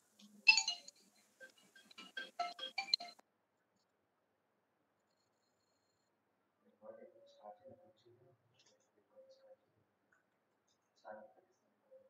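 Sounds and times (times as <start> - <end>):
phone ringtone tune: 0.5 - 3.2.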